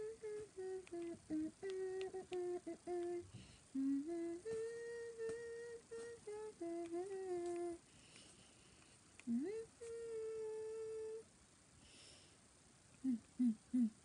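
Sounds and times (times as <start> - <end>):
woman humming: 0.0 - 7.8, 9.2 - 11.3, 13.0 - 14.0.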